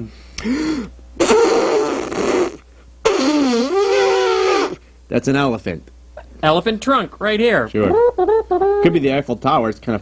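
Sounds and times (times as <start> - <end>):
man imitating elephant trumpeting: 1.2 - 4.8, 7.8 - 9.1.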